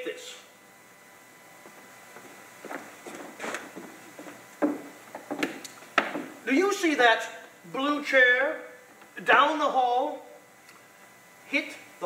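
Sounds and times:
footsteps on wooden stage: 1.6s - 6.4s
knocks on wooden floor: 4.2s - 6.4s.

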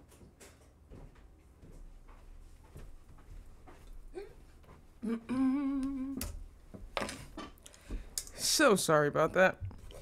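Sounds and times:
person humming: 4.1s - 4.4s, 5.0s - 6.4s.

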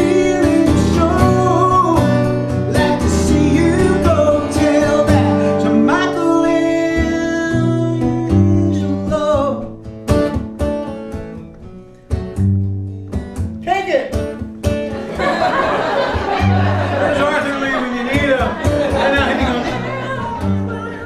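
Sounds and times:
man singing folk song: 0.0s - 9.9s
strummed acoustic guitar: 0.0s - 21.0s.

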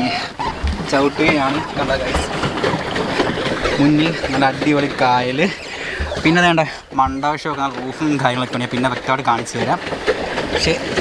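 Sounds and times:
man talking: 0.9s - 2.4s, 3.8s - 9.8s.

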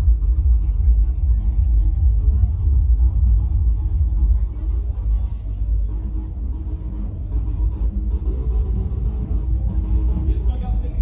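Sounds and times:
trance music with heavy bass: 0.0s - 11.0s.

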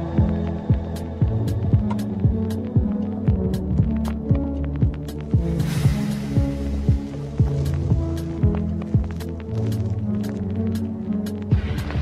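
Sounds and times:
deep bass drone: 0.0s - 12.0s
kick drums: 0.1s - 10.4s, 11.5s - 12.0s
hissing swell: 5.5s - 7.8s.

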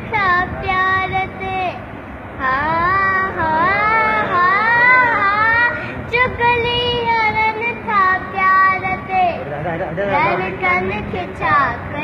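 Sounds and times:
low background noise: 0.0s - 12.0s
girl singing in high voice: 2.4s - 9.4s, 10.2s - 12.0s.

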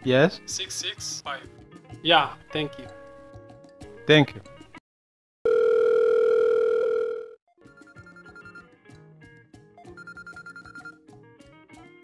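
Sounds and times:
telephone ringback tone: 5.5s - 8.7s, 9.9s - 11.0s.

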